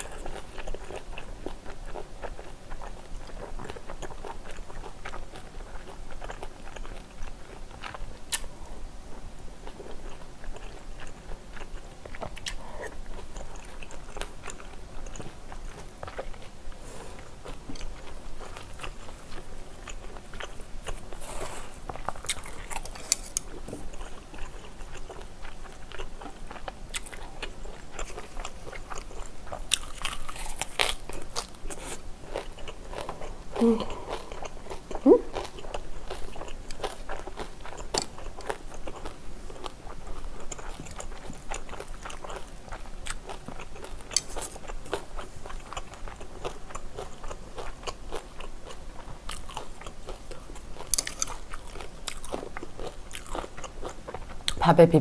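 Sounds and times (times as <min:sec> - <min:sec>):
chewing and crunching food: 0:00.0 - 0:54.6.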